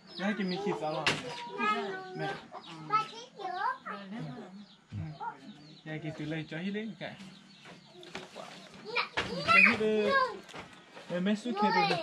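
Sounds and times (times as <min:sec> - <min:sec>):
chickens clucking: 0:00.0 - 0:06.3
people talking: 0:00.2 - 0:07.2, 0:11.5 - 0:12.0
child's voice: 0:01.4 - 0:04.3, 0:08.0 - 0:10.4, 0:11.5 - 0:12.0.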